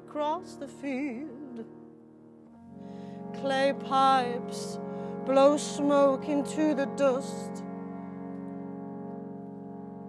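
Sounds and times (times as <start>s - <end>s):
sustained instrumental chord: 0.0s - 10.0s.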